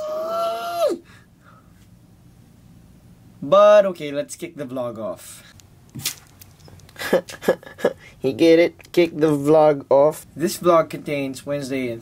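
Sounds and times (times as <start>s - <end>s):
man's falsetto squeal: 0.0s - 1.0s.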